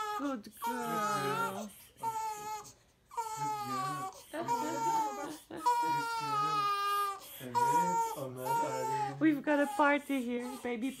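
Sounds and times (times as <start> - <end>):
newborn baby crying: 0.0 - 11.0.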